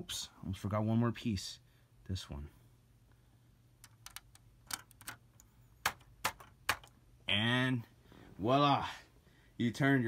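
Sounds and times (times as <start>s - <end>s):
plastic bricks clicking: 3.8s - 7.0s.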